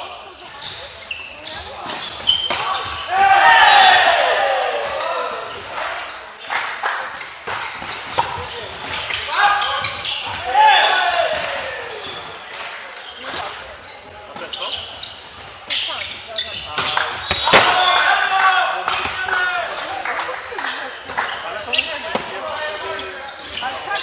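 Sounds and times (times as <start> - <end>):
players shouting calls: 2.4 - 6.1, 9.0 - 12.4, 16.4 - 20.2.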